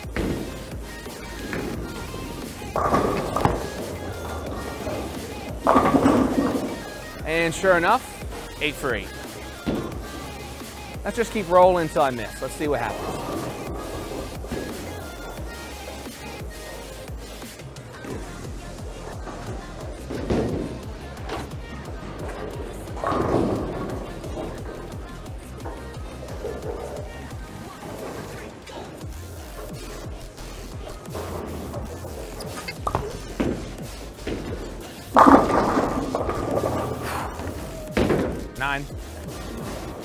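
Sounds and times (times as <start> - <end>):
bowling lane impacts: 0.0 - 40.0
bowling pins crashing: 0.0 - 40.0
electronic music: 0.0 - 40.0.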